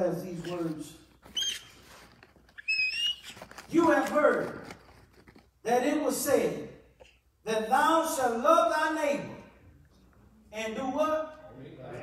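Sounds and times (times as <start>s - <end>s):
high-pitched squeaks: 1.3s - 3.7s.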